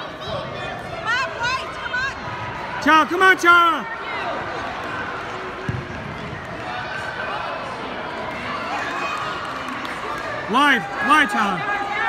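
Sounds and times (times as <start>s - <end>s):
faint voices in a hall: 0.0s - 12.0s
soccer ball kick thud: 5.6s - 6.4s.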